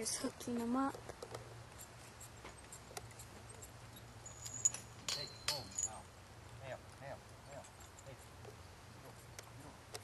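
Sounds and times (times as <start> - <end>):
metal harness hardware clinking: 2.2 - 6.1.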